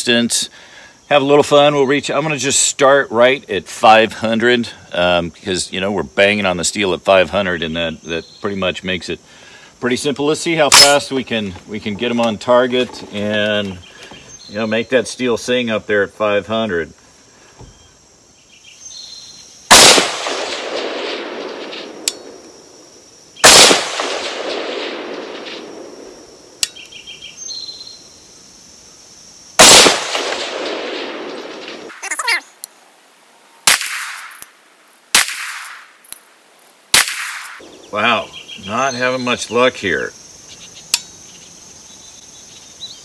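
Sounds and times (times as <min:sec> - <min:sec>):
rifle shots with rolling echo: 0:19.7 - 0:22.6, 0:23.4 - 0:26.6, 0:29.6 - 0:32.0, 0:33.7 - 0:34.4, 0:35.1 - 0:35.9, 0:36.9 - 0:37.8
sharp clicks: 0:21.4 - 0:22.2.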